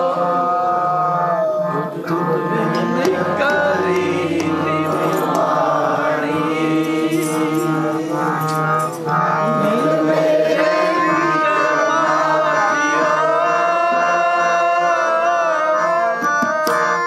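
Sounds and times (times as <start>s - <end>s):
harmoniums: 0.0s - 17.0s
men singing together: 0.0s - 17.0s.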